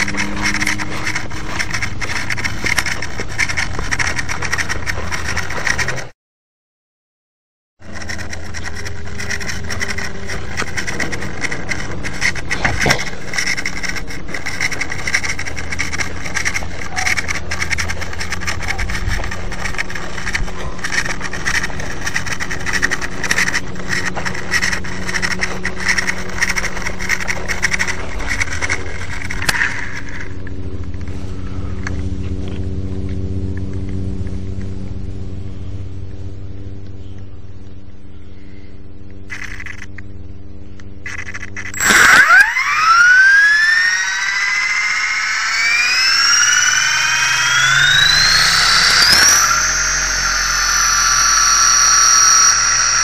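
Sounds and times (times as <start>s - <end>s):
fine rattle: 0.0s - 6.1s, 7.8s - 31.2s, 39.2s - 40.0s, 41.0s - 53.0s
low hum: 0.0s - 6.2s, 7.8s - 53.0s
rc helicopter motor and rotor drone: 0.0s - 6.2s, 7.8s - 53.0s.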